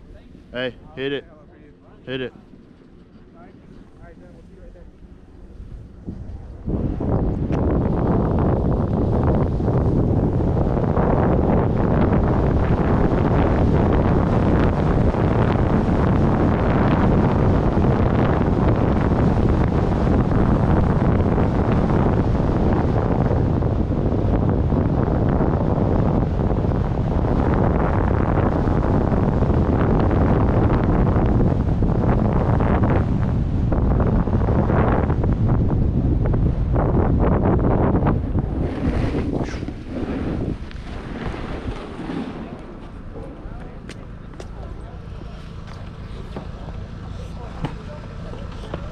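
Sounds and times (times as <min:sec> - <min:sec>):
wind buffeting microphone: 0:00.0 - 0:48.9
skis sliding over snow: 0:38.6 - 0:43.0.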